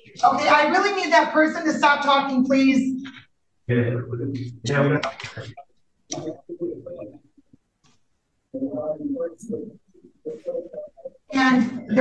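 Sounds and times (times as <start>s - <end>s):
muffled voice talking: 3.7s - 7.2s, 8.6s - 12.0s.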